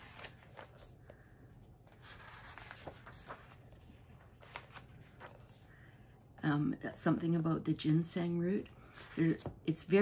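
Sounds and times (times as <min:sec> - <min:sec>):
magazine pages rustling: 0:00.0 - 0:05.8.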